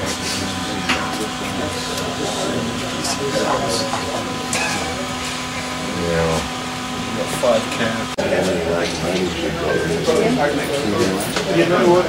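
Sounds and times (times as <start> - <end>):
people talking indistinctly: 0.0 - 12.0
steady background hum: 0.0 - 12.0.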